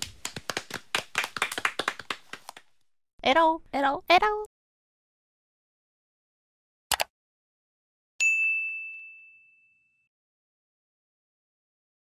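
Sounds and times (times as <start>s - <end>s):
bright bell ding: 8.2s - 10.1s.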